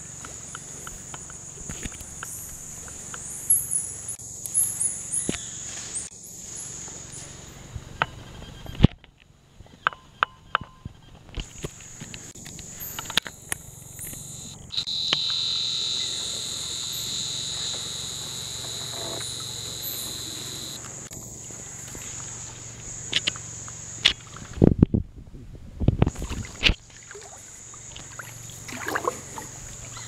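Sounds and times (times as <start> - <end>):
lower insect drone: 0.0 - 8.8, 11.0 - 24.7, 26.1 - 30.0
high-pitched insect drone: 2.2 - 7.3, 12.6 - 24.0.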